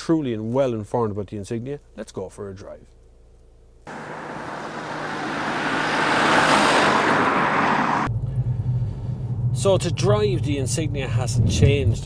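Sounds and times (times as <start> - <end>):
car approaching on road: 3.9 - 11.8.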